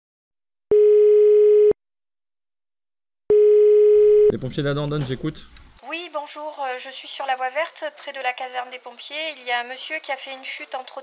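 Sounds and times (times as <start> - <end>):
telephone ringing tone: 0.7 - 1.8, 3.3 - 4.3.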